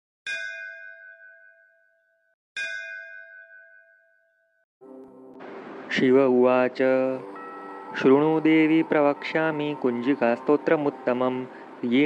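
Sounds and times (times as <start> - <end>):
metal bell ringing: 0.3 - 4.5.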